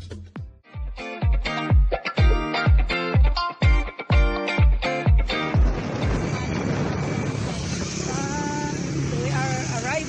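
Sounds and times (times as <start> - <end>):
vehicle engine and road noise: 5.6 - 10.0
brief held tone: 5.7 - 8.2
people's voices: 8.0 - 10.0.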